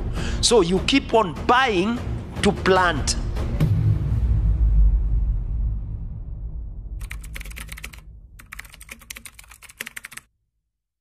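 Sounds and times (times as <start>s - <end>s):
low rumble: 3.8s - 7.0s
keyboard typing: 7.0s - 10.3s.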